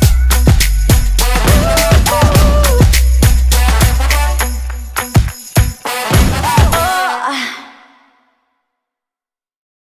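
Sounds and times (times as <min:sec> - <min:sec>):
pop song vocal note with echo: 0:01.2 - 0:04.4, 0:05.9 - 0:08.3.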